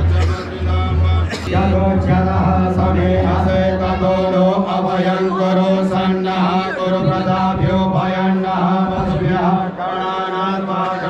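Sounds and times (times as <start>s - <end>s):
man leading through a microphone: 0.0s - 11.0s
men chanting a hymn: 0.0s - 11.0s
steady low drone: 0.0s - 11.0s.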